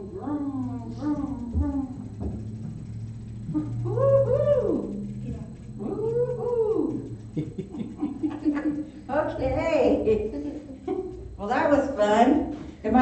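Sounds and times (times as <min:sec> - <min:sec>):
low steady hum: 0:00.0 - 0:13.0
voice making long high calls: 0:00.9 - 0:07.2.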